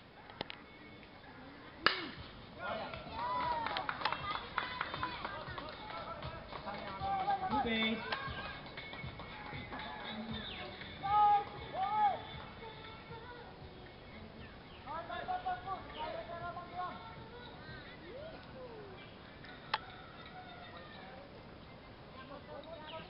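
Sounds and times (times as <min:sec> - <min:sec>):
bat cracking against ball: 0:01.8 - 0:02.3
people shouting: 0:02.6 - 0:03.8, 0:11.0 - 0:12.2.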